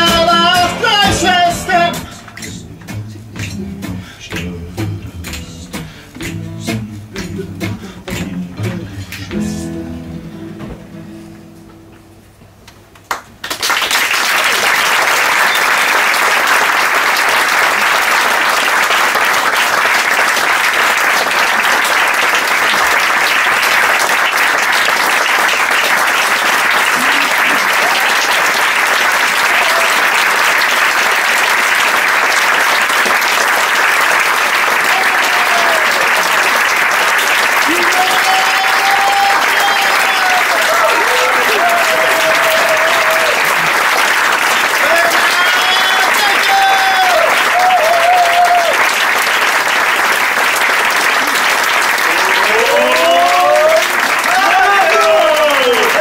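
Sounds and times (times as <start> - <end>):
audience applauding: 0.0 - 4.5, 13.0 - 56.0.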